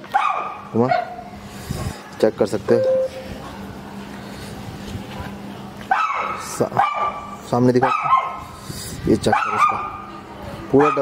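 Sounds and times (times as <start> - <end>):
puppy barking: 0.1 - 1.2, 5.9 - 8.4, 9.3 - 10.1, 10.8 - 11.0.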